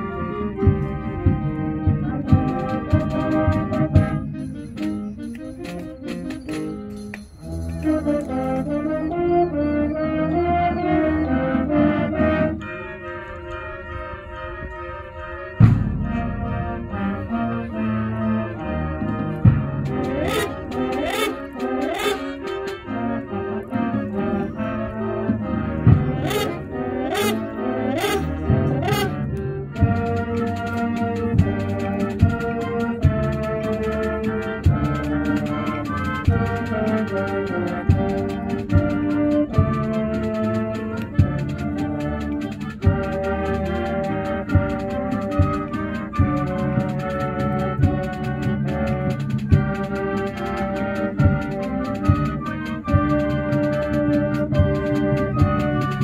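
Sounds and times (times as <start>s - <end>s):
concert band playing: 0.0s - 56.0s.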